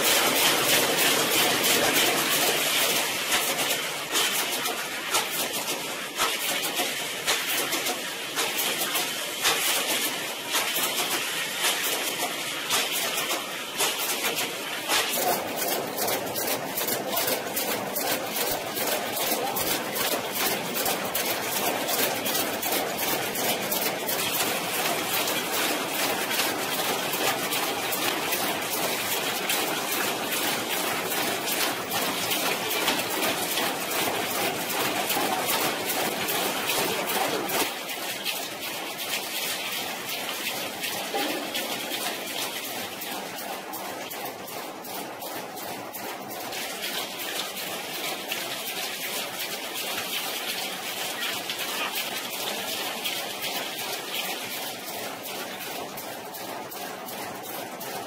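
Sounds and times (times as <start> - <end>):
machinery running: 0.0 - 38.0
rapid even clicking: 0.0 - 58.0.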